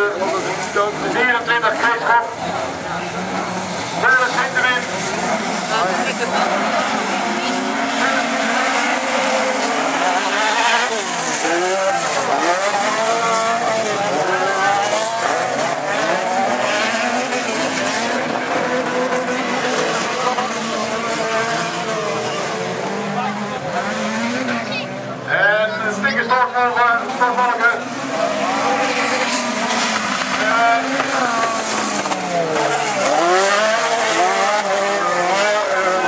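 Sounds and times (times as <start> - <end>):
racing car engines revving: 0.0 - 36.0.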